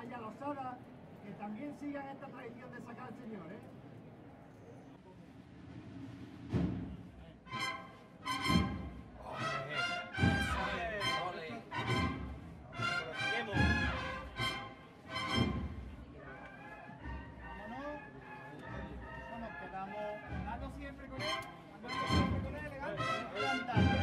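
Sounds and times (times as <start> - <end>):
brass chords: 7.4 - 20.4, 21.0 - 24.0.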